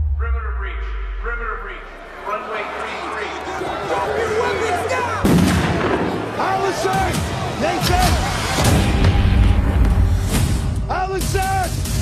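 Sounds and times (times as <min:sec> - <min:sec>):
deep boom with low rumble: 0:00.0 - 0:02.0
voices: 0:00.2 - 0:08.6.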